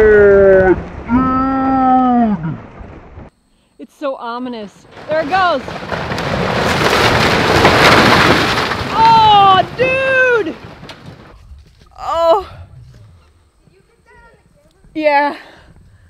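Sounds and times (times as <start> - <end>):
wooden barn collapsing crash: 4.6 - 12.1
woman exclaiming: 8.9 - 10.5, 12.0 - 12.5.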